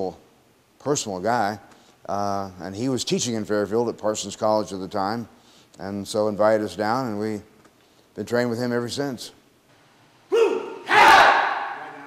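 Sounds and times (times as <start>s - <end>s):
people shouting together: 10.3s - 12.0s
person calling out: 10.3s - 12.0s.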